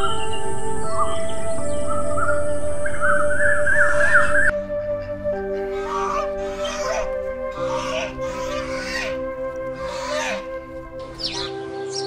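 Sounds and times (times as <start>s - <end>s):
sustained chords music: 0.0s - 12.0s
harsh bird calls: 0.9s - 4.5s, 5.3s - 12.0s.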